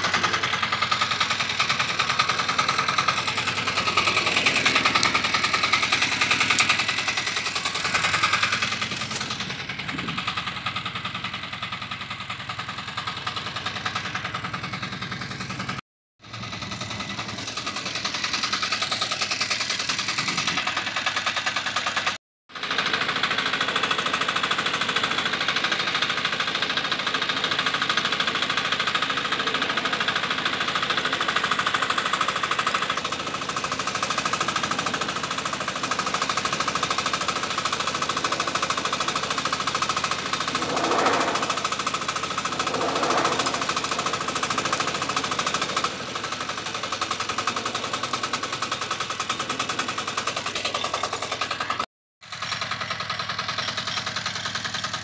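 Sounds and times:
tractor engine chugging: 0.0 - 55.0.

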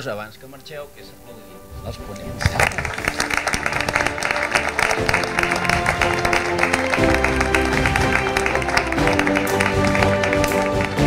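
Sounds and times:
music of held notes: 0.0 - 11.0
audience applauding: 2.4 - 11.0.

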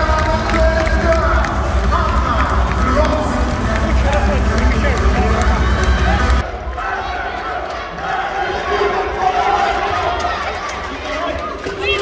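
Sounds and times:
bass-heavy music over loudspeakers: 0.0 - 6.4
crowd noise: 0.0 - 12.0.

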